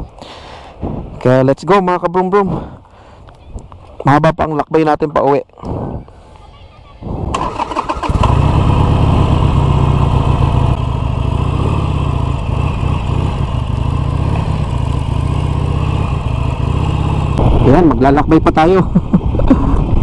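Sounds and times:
motorcycle engine cranking: 0:07.3 - 0:08.9
motorcycle engine running: 0:07.4 - 0:17.9.

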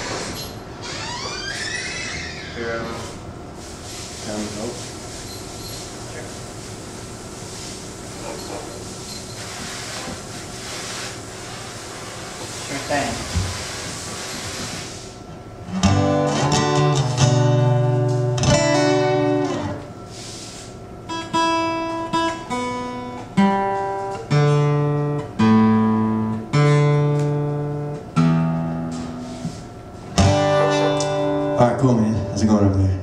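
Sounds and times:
acoustic guitar strumming and plucking: 0:15.6 - 0:19.9, 0:21.1 - 0:32.9.

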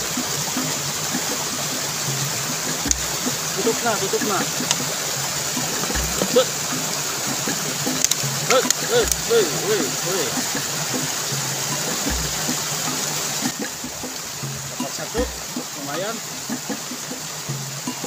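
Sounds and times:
small waterfall rushing: 0:00.0 - 0:18.0.

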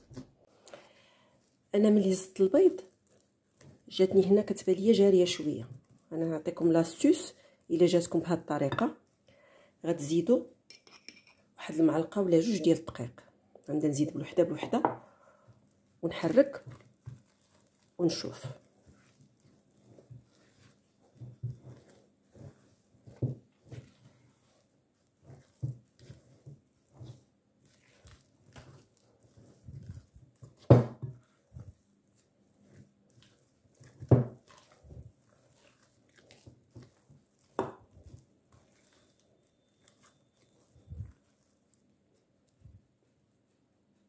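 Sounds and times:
spatula squelching and scraping: 0:00.0 - 0:09.2, 0:10.0 - 0:12.6, 0:13.7 - 0:44.0.

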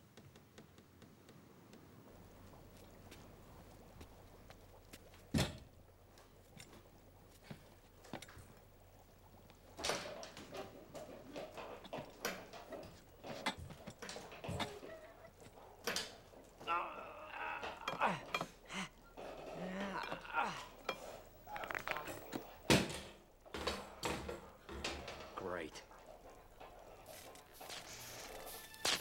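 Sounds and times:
knocks and rattles: 0:00.0 - 0:27.9
knocks clicks and clatter: 0:00.0 - 0:27.9.

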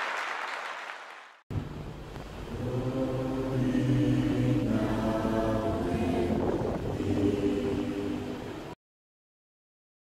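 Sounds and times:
choir singing a sustained chord: 0:02.5 - 0:08.8.

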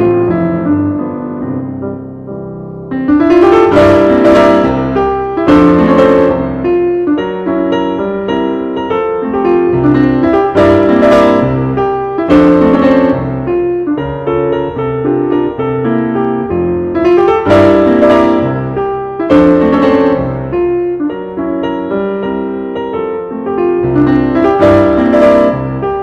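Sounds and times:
solo piano music: 0:00.0 - 0:26.0.

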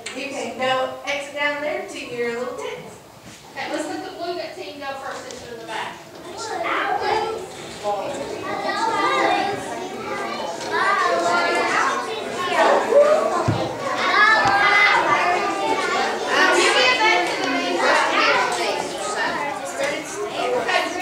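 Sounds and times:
children chattering and calling out: 0:00.0 - 0:21.0.

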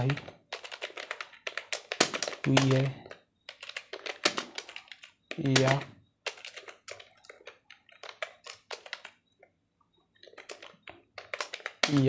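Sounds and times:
person speaking: 0:00.0 - 0:00.3, 0:02.3 - 0:03.2, 0:04.3 - 0:06.0
keyboard typing: 0:00.0 - 0:12.0.

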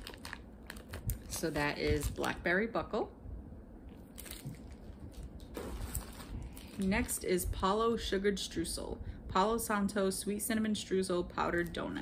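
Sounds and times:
plastic bags crinkling: 0:00.0 - 0:02.4, 0:04.1 - 0:07.3.

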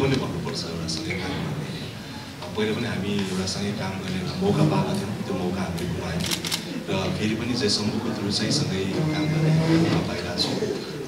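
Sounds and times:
man talking into microphone: 0:00.0 - 0:11.0.

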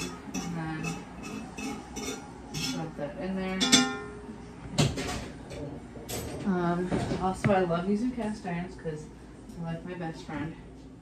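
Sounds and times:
metal utensil scraping skillet: 0:00.0 - 0:04.0.

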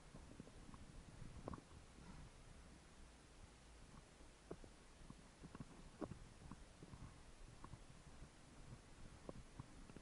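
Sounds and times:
faint low rumble: 0:00.0 - 0:10.0
small clicks and taps: 0:01.4 - 0:01.8, 0:03.9 - 0:07.8, 0:09.2 - 0:10.0.

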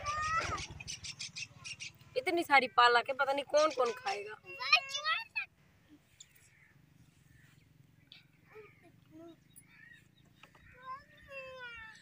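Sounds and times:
bird call: 0:00.0 - 0:02.2, 0:06.2 - 0:12.0.

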